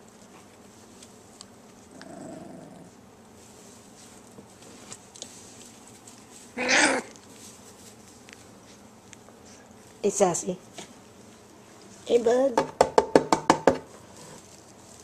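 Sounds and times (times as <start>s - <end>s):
puppy growling: 1.8s - 3.0s, 6.6s - 7.2s, 14.0s - 14.6s
puppy yelping: 6.6s - 7.2s.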